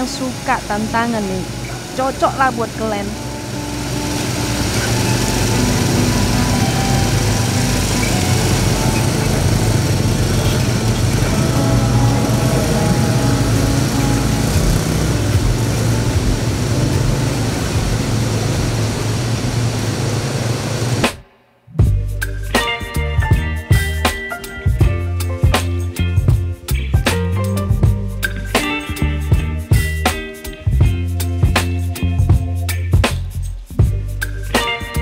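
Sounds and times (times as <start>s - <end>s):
tyres splashing water: 0.0s - 21.0s
quad bike engines running: 0.0s - 21.2s.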